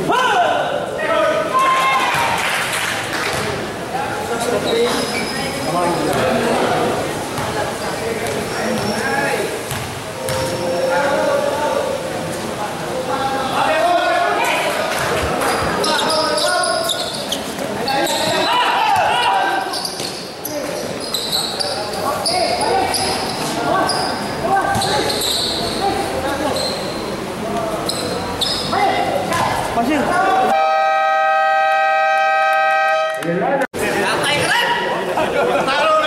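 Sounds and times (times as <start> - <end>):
shoes squeaking on court: 4.6 - 6.4, 7.4 - 10.9, 15.0 - 25.8, 26.4 - 27.0, 27.8 - 28.8
crowd shouting: 18.3 - 19.7.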